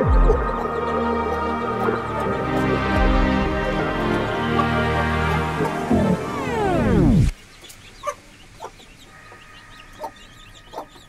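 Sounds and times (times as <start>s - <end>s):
hen clucking: 0.0s - 6.7s, 7.6s - 11.0s
background music sliding down: 0.0s - 7.4s
chicks peeping: 0.0s - 11.0s.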